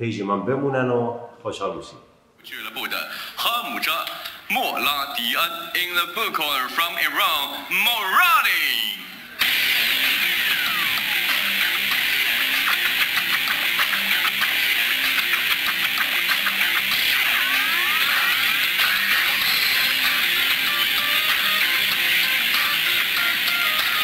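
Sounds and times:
announcer calling over microphone: 0:02.4 - 0:09.2.

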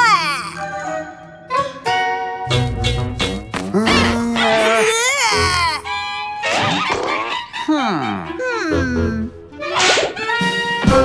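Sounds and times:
cartoon vocal noises: 0:00.0 - 0:00.9, 0:03.7 - 0:10.0.

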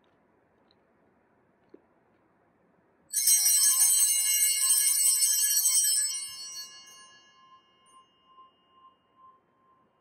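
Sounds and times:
altar bells ringing: 0:03.1 - 0:10.0.

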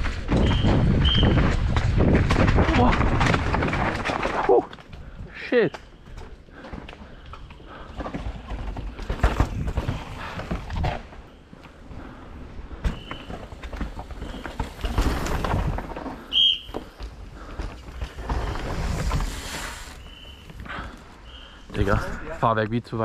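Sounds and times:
bike knocking and rattling: 0:00.0 - 0:05.2, 0:05.9 - 0:11.4, 0:12.7 - 0:19.5
bike tyre noise on dirt: 0:00.0 - 0:22.3.

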